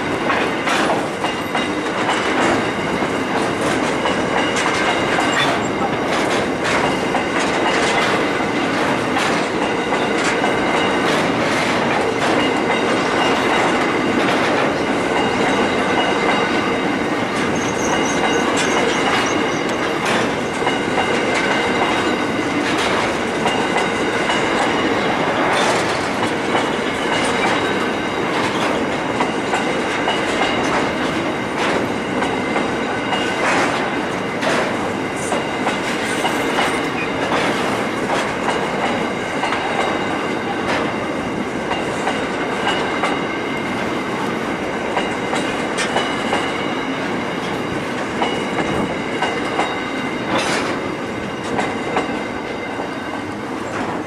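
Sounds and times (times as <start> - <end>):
train wagons rolling on rails: 0.0 - 54.0
wheels clicking over rail joints: 0.0 - 54.0
high-pitched wheel squeal: 17.5 - 19.8.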